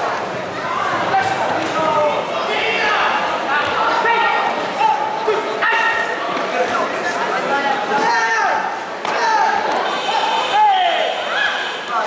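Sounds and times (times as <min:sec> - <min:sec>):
people shouting in echoing hall: 0:00.0 - 0:06.3, 0:07.8 - 0:12.0
sharp high-pitched shout: 0:05.6 - 0:06.1, 0:08.1 - 0:11.9.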